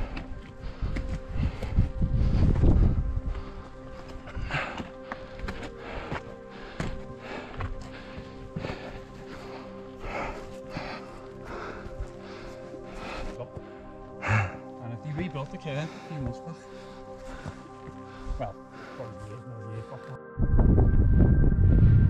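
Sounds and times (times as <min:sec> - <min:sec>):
background music with held tones: 0:00.0 - 0:22.0
hiking boots stepping on rock: 0:04.0 - 0:12.2, 0:16.8 - 0:18.1.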